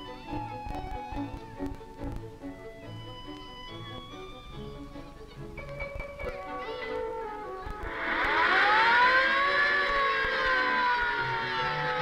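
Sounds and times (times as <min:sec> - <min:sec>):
hand-cranked siren wailing: 0:06.8 - 0:12.0.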